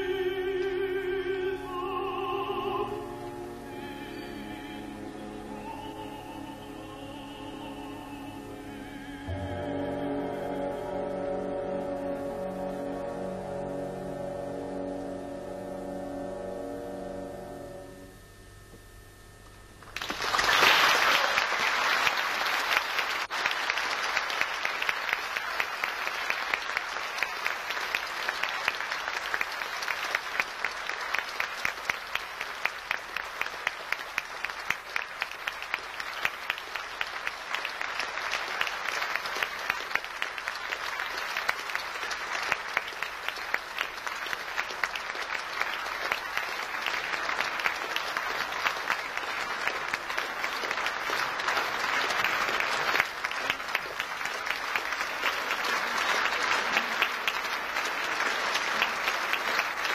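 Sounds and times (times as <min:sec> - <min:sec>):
audience applauding: 0:19.8 - 0:59.9.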